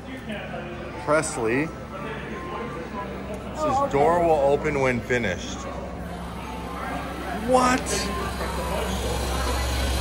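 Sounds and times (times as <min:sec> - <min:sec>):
machine humming and hissing: 0:05.9 - 0:10.0.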